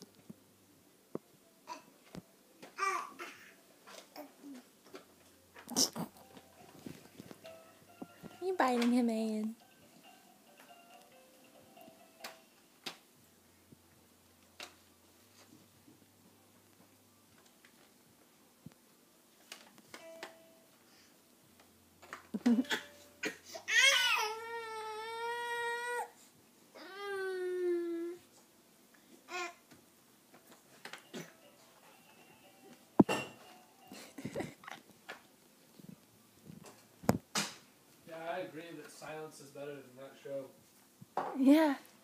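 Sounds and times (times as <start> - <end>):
soft baby sounds: 1.6 - 2.0, 2.7 - 4.7, 22.6 - 28.4, 29.2 - 29.6
baby crying: 22.7 - 26.2.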